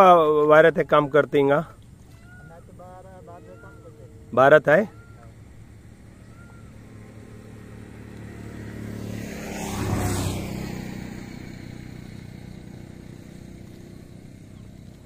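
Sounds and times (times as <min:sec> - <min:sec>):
motor vehicle passing by: 0:00.0 - 0:15.0.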